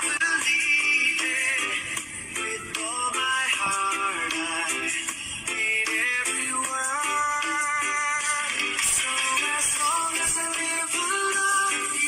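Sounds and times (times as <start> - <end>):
song with singing voice: 0.0 - 12.0.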